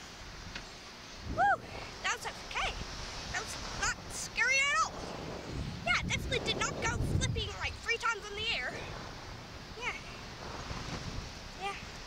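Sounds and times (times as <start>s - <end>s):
steady rush of noise: 0.0s - 12.0s
girl crying out and yelping: 1.4s - 1.6s.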